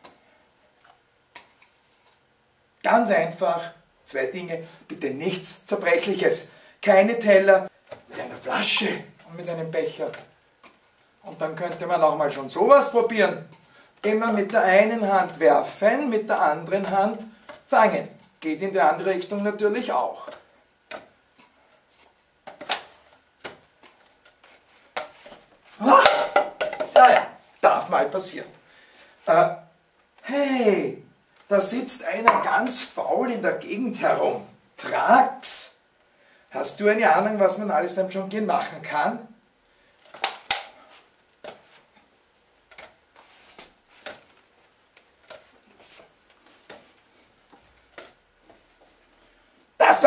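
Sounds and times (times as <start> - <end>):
man's voice: 2.9 - 10.2, 25.8 - 26.3, 26.9 - 28.5, 30.3 - 35.8, 49.8 - 50.0
objects caught by hand: 25.0 - 27.3.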